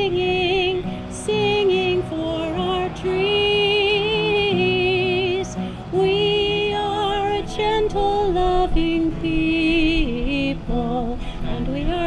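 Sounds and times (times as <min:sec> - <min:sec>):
acoustic guitar: 0:00.0 - 0:12.0
woman singing with vibrato: 0:00.0 - 0:12.0.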